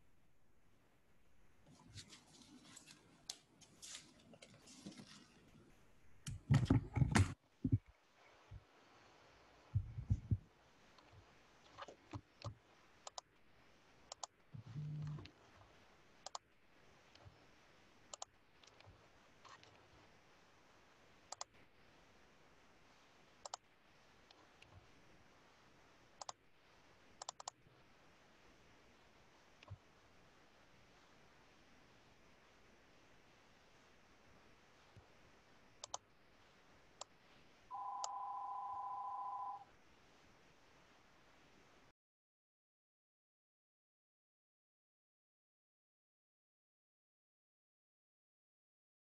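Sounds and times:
short low hum: 0:14.6 - 0:15.2
faint sharp clicks: 0:35.8 - 0:36.0
two-pitch electronic tone: 0:37.7 - 0:39.6.

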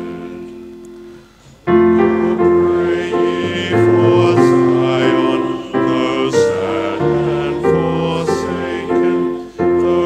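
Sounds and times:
piano hymn chords: 0:00.0 - 0:10.0.

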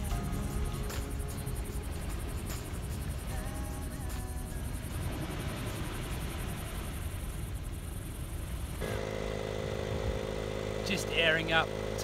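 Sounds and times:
waves on rocky shore: 0:00.0 - 0:12.0
air compressor humming: 0:08.8 - 0:12.0
idling engine: 0:08.8 - 0:12.0.

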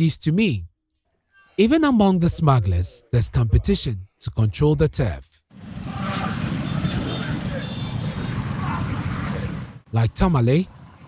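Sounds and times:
vehicle engines running: 0:05.5 - 0:11.0.

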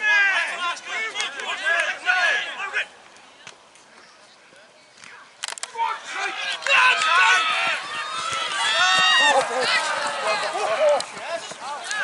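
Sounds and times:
people shouting and yelling: 0:00.0 - 0:03.0, 0:05.5 - 0:12.0.

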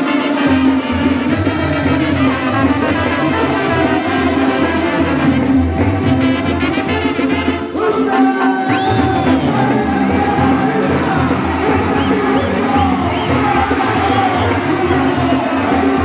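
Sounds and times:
brass band playing: 0:00.0 - 0:16.0.

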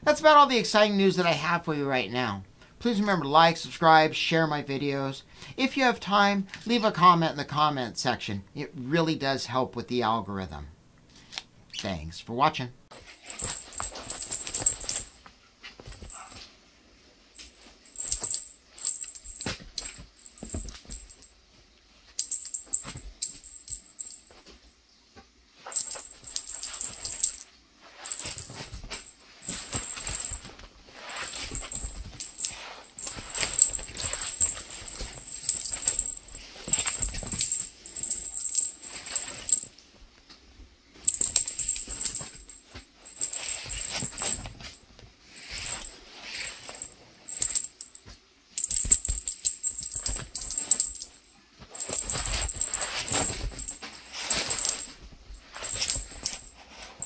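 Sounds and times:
rustling: 0:12.9 - 0:57.0
light high jingling: 0:13.0 - 0:15.2, 0:17.4 - 0:21.4, 0:22.1 - 0:25.0, 0:25.6 - 0:39.8, 0:41.0 - 0:44.7, 0:45.4 - 0:57.0.

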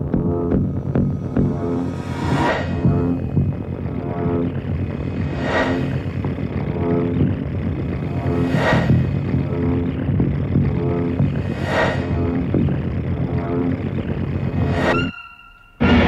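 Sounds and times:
low throbbing drone: 0:00.0 - 0:16.0
rushing noise swell: 0:01.5 - 0:04.0, 0:04.8 - 0:06.8, 0:07.7 - 0:09.6, 0:11.2 - 0:12.5.

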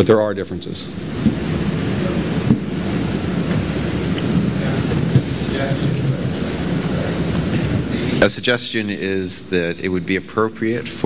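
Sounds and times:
speech: 0:00.0 - 0:00.9, 0:08.2 - 0:11.0
low rumbling noise: 0:00.4 - 0:11.0.

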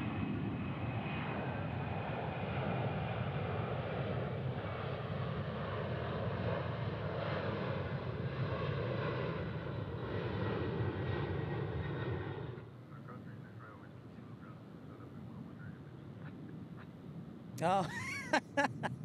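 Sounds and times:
jet engines at climb power: 0:00.0 - 0:17.6.

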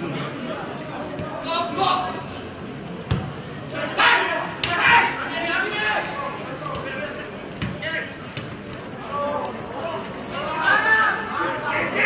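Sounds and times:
footballers shouting: 0:03.6 - 0:12.0.

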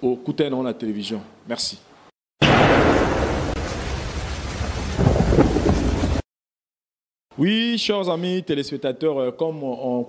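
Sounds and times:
thunder rumbling crash: 0:02.4 - 0:06.2.

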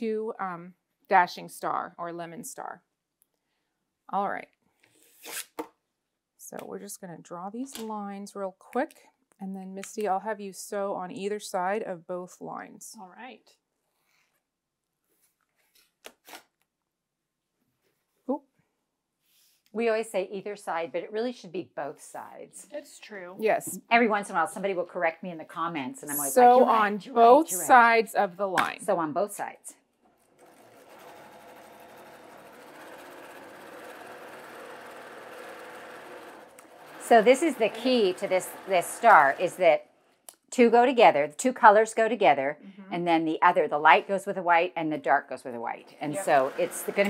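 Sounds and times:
electric sewing machine stitching: 0:30.2 - 0:39.8, 0:45.9 - 0:47.0.

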